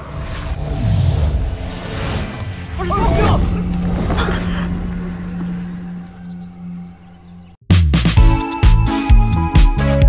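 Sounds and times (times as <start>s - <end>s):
blast rumble: 0.0s - 7.6s
low drone background score: 0.0s - 7.6s.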